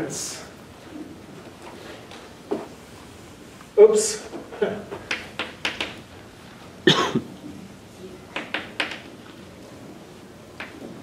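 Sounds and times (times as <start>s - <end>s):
person coughing: 6.8s - 7.3s.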